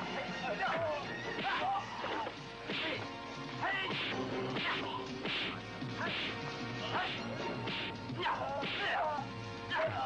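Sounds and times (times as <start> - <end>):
film music score: 0.0 - 10.0
punch and kick hits: 2.7 - 3.0, 3.8 - 6.4, 7.0 - 8.0.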